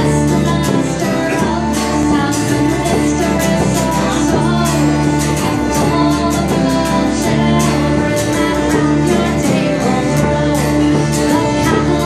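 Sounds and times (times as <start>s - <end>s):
fiddle: 0.0s - 12.0s
strummed acoustic guitar: 0.0s - 12.0s
woman singing: 0.0s - 12.0s.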